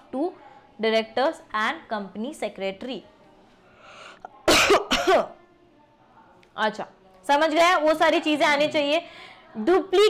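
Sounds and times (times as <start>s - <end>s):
woman coughing: 4.4s - 5.3s.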